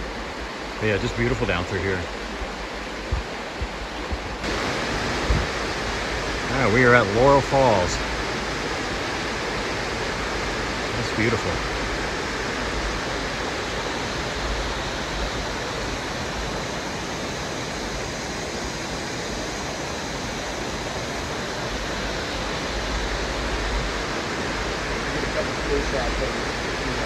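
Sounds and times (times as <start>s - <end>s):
waterfall rushing: 0.0s - 27.0s.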